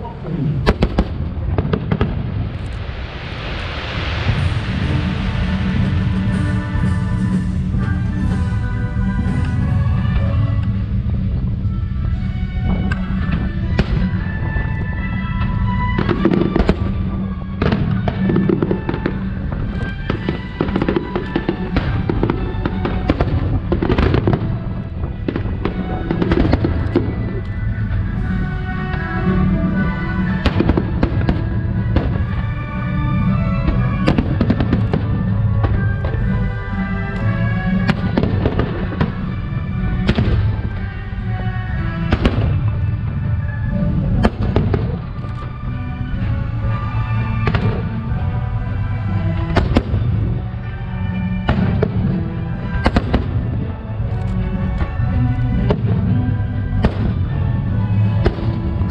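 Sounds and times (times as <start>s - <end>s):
loud music: 0.0s - 58.9s.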